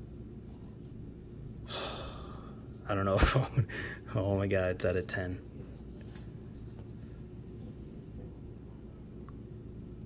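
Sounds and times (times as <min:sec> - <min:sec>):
steady low hum: 0:00.0 - 0:10.0
man gasping: 0:01.7 - 0:02.6, 0:03.7 - 0:04.1
person speaking: 0:02.8 - 0:05.9.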